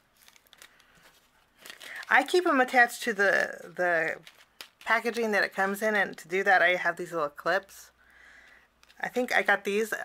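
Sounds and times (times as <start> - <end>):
plastic bag crinkling: 0.0 - 6.3, 8.4 - 9.3.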